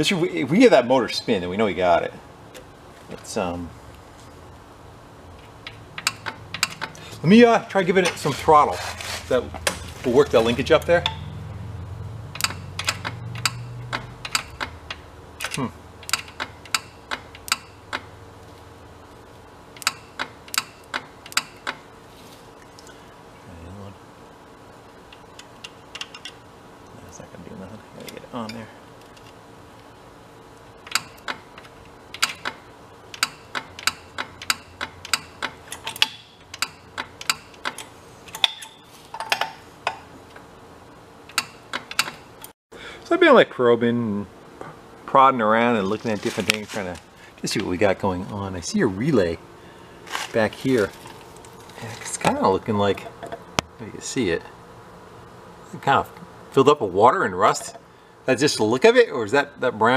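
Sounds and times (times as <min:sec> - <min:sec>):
faint steady hum: 0:00.0 - 0:59.9
relays clicking: 0:12.3 - 0:18.1, 0:30.8 - 0:40.4, 0:41.3 - 0:42.5.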